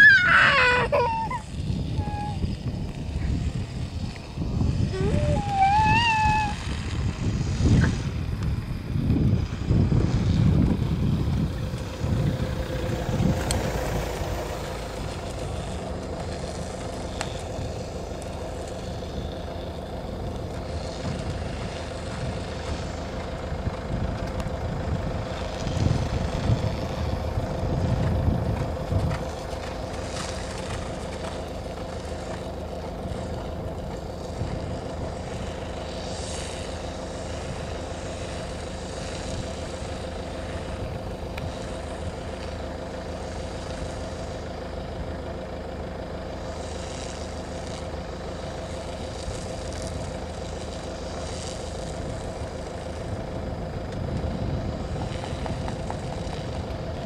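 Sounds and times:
wind buffeting microphone: 0:00.0 - 0:18.0, 0:19.0 - 0:31.4, 0:32.0 - 0:35.7, 0:52.2 - 0:57.0
small engine humming: 0:00.0 - 0:57.0.

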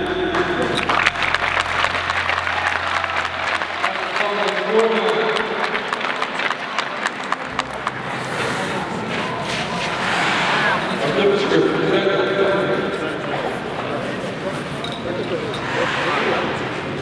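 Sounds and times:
audience applauding: 0:00.0 - 0:09.4.

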